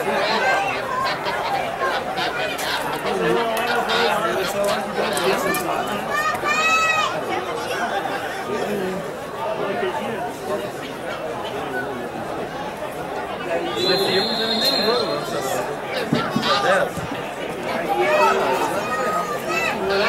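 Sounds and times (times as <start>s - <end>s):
spectators chattering and calling out: 0.0s - 20.0s
high steady whistle blast: 13.8s - 15.2s.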